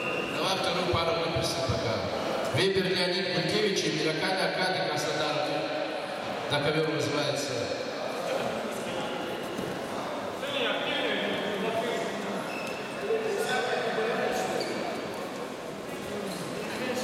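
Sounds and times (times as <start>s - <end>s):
echoing voices and calls: 0.0s - 17.0s.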